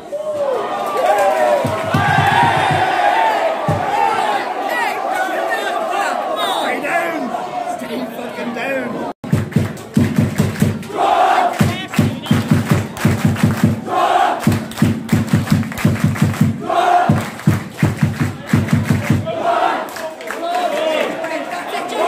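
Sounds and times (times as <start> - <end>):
loud group shout: 0.1 - 7.8, 10.9 - 11.9, 13.9 - 14.4, 16.6 - 17.2, 19.2 - 22.0
fast steady thumping beat: 1.6 - 3.0, 9.2 - 10.9, 11.5 - 19.4
football supporters chanting: 1.7 - 9.2, 10.4 - 14.8, 16.2 - 22.0.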